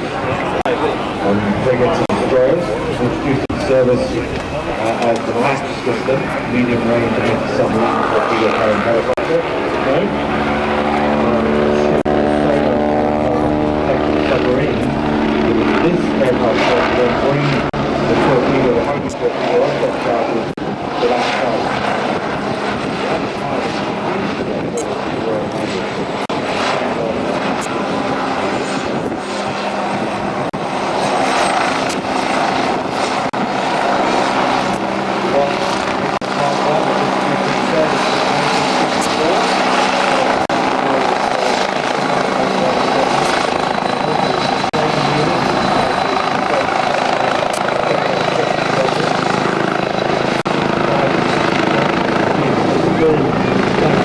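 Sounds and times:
helicopter flying: 0:00.0 - 0:54.0.

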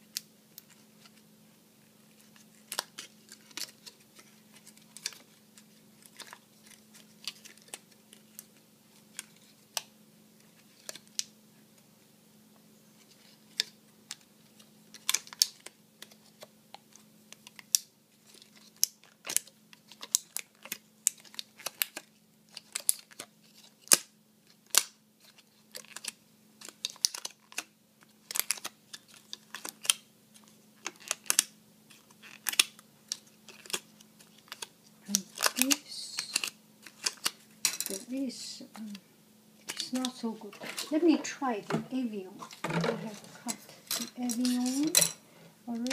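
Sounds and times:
faint steady hum: 0:00.0 - 0:45.9
plastic clicking and crackling: 0:14.9 - 0:38.1.

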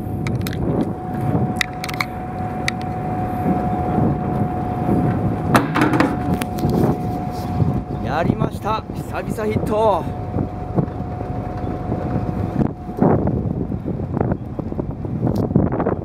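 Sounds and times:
boat engine rumbling: 0:00.0 - 0:16.0
steady engine whine: 0:00.0 - 0:16.0
knocks and clatter on deck: 0:05.5 - 0:06.3.

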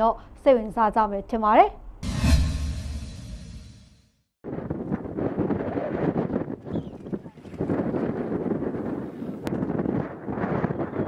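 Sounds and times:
wind buffeting microphone: 0:04.4 - 0:11.0.

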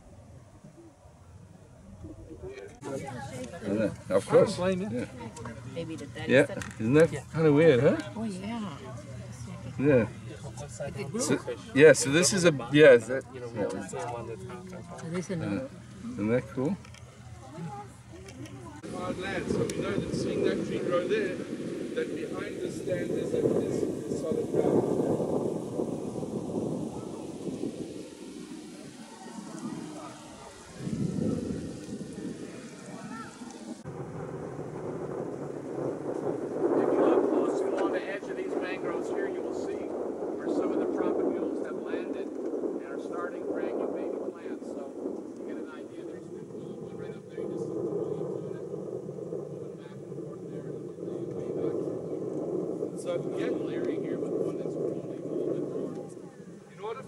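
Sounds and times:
wind on microphone: 0:00.0 - 0:57.0
faint voices: 0:00.6 - 0:34.0, 0:34.8 - 0:57.0.

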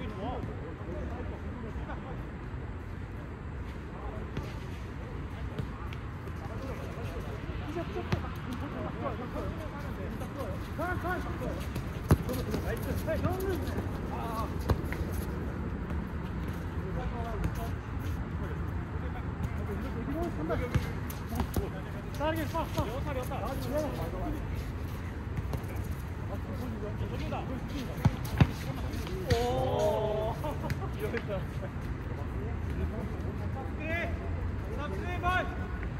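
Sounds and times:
steady background noise: 0:00.0 - 0:35.9
ball kicked thumps: 0:11.8 - 0:12.6.

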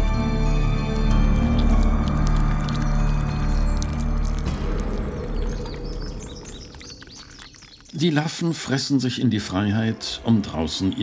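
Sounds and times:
birds chirping: 0:00.1 - 0:11.0.

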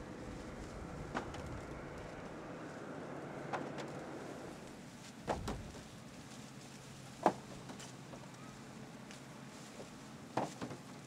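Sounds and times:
rustle of dry cornstalks: 0:00.0 - 0:11.0.

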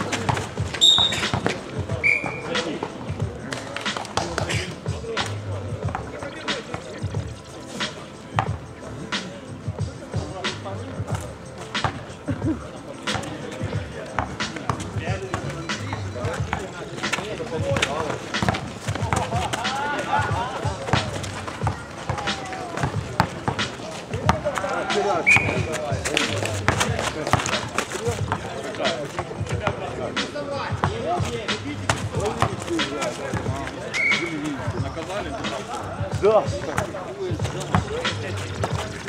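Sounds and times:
basketball bouncing on asphalt: 0:00.0 - 0:02.5, 0:14.2 - 0:24.6, 0:25.3 - 0:29.8, 0:30.8 - 0:32.7, 0:36.5 - 0:38.0
distant voices: 0:00.0 - 0:39.0
footsteps: 0:16.3 - 0:29.8.

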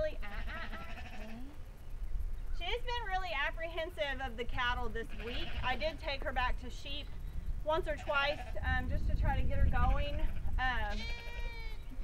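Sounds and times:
wind rumble on microphone: 0:00.0 - 0:12.0
sheep bleating: 0:00.2 - 0:01.6, 0:05.1 - 0:05.9, 0:10.1 - 0:11.9.

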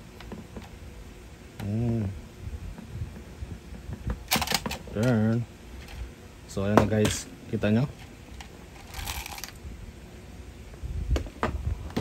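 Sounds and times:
handling noise: 0:00.0 - 0:09.6.

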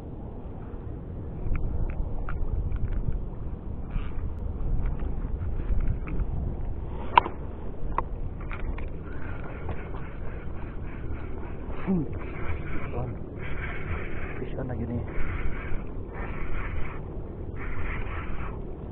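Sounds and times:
wind rumbling on microphone: 0:00.0 - 0:18.9
fishing gear clicks and taps: 0:01.5 - 0:03.2, 0:04.1 - 0:10.0.

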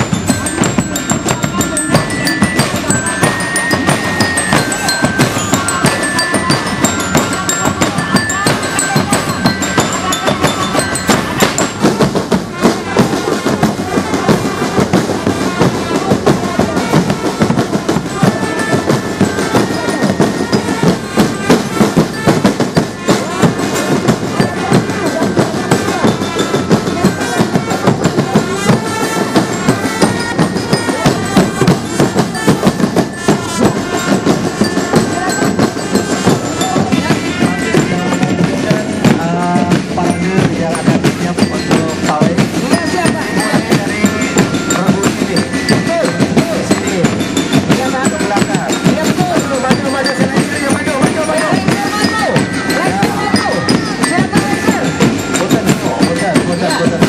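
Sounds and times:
bass drums: 0:00.0 - 0:57.0
melody over drums: 0:00.0 - 0:57.0
snare drums in fast rhythm: 0:00.0 - 0:57.0.

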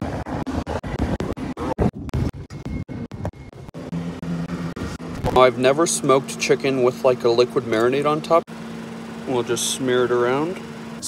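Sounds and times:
wind noise: 0:00.0 - 0:03.8
vehicle driving on dirt road: 0:00.0 - 0:09.6
steady low hum: 0:00.0 - 0:11.0.

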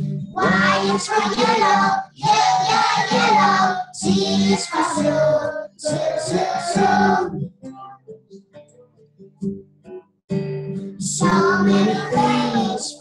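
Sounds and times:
acoustic guitar: 0:00.0 - 0:13.0
children singing in unison: 0:00.4 - 0:07.4, 0:11.0 - 0:13.0.

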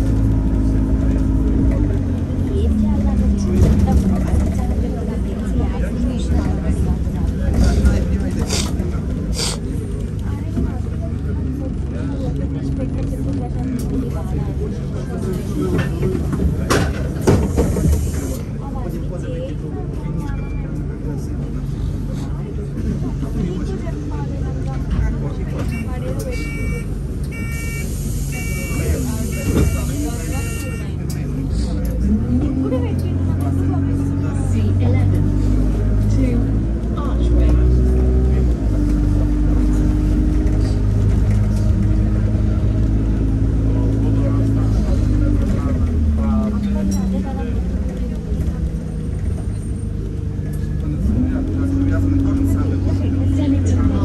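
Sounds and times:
bus engine idling: 0:00.0 - 0:54.0
bus engine pulling away: 0:00.0 - 0:54.0
short beeps: 0:25.7 - 0:30.9.

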